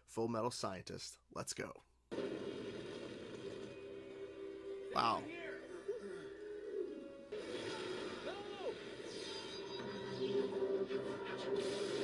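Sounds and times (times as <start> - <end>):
explosion rumble and crackle: 2.1 - 4.3
fire crackling: 2.1 - 12.0.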